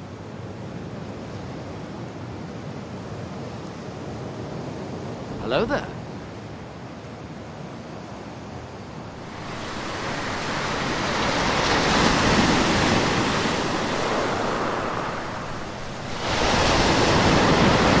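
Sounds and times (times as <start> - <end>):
sea surf breaking: 9.1 - 18.0
wind on microphone: 9.1 - 18.0.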